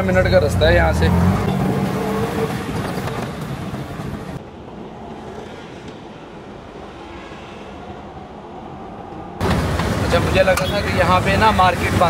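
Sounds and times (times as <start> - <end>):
auto-rickshaw engine: 0.0 - 6.4, 9.4 - 12.0
low rumble: 4.4 - 10.2.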